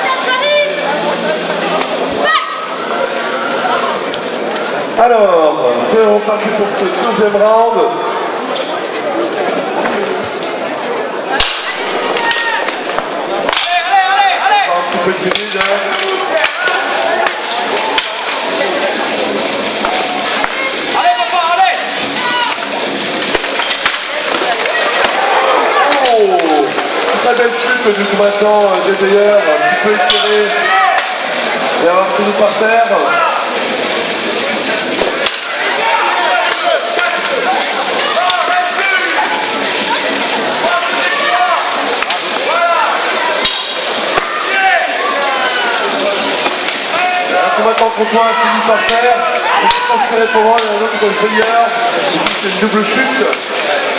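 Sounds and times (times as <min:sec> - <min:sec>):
people shouting: 0:00.0 - 0:04.1, 0:11.3 - 0:53.9
crowd voices: 0:00.0 - 0:53.9.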